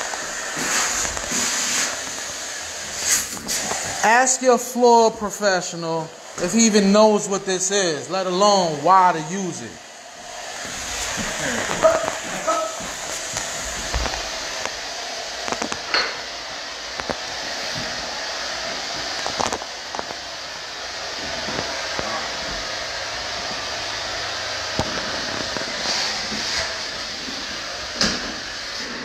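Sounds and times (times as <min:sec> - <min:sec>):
rotary floor buffer running: 0:00.0 - 0:04.3, 0:09.9 - 0:29.0.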